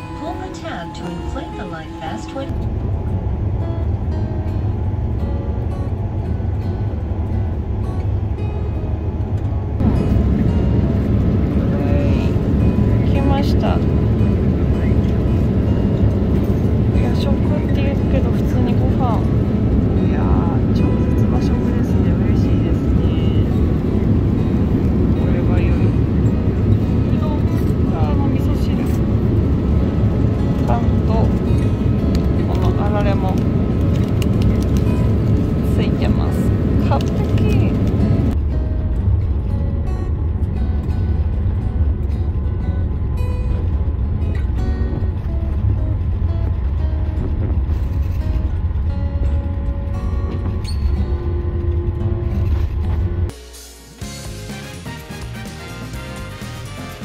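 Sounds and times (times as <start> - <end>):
jet engines and airflow in cabin: 0.0 - 57.0.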